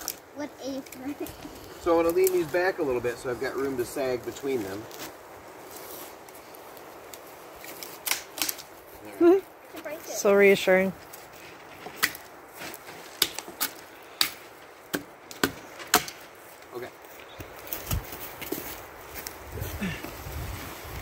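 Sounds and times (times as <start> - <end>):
soft rustling: 0.0 - 13.6.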